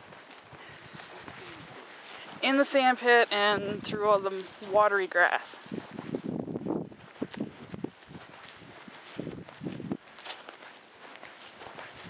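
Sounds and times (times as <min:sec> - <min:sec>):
footsteps on grass: 0:00.0 - 0:12.0.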